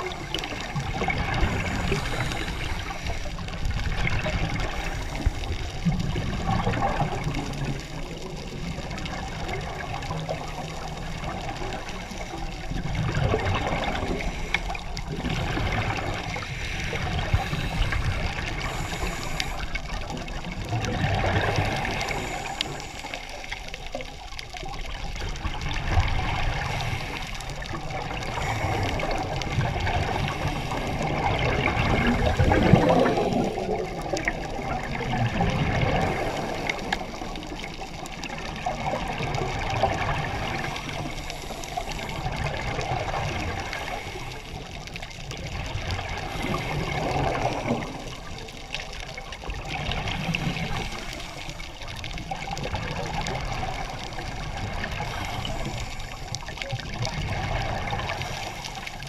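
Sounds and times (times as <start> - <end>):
underwater regulator bubbles gurgling: 0.0 - 59.0.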